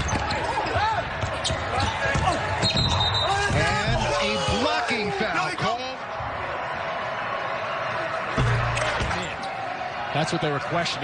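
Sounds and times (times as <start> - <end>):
referee's whistle: 2.6 - 3.8.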